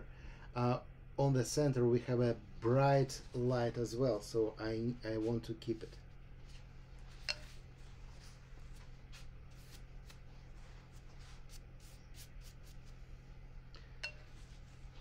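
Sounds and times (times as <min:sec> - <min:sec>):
steady low hum: 0:00.0 - 0:15.0
brush scratching on paper: 0:07.8 - 0:13.1.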